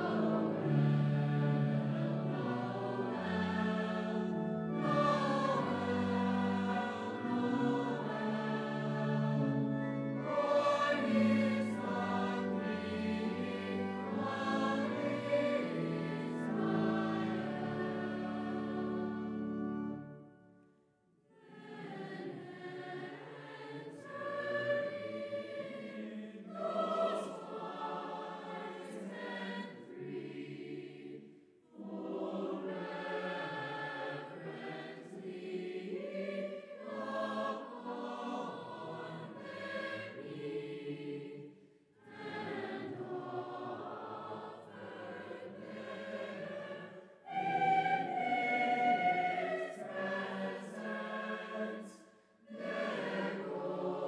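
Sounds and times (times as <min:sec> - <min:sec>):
choir singing: 0:00.0 - 0:20.5, 0:21.3 - 0:54.0.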